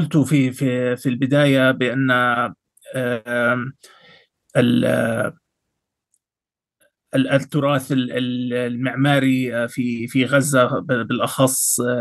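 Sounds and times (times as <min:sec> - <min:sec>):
man speaking: 0:00.0 - 0:03.9, 0:04.6 - 0:05.4, 0:07.2 - 0:12.0.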